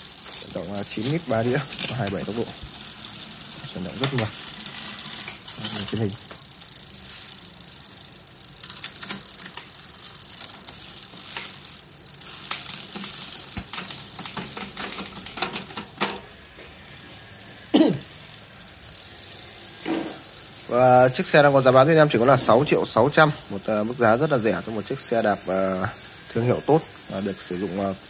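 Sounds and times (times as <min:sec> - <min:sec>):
sharp clicks and rattles: 0:00.0 - 0:16.5
bike chain running over gears: 0:00.0 - 0:28.0
freewheel ticking: 0:00.0 - 0:28.0.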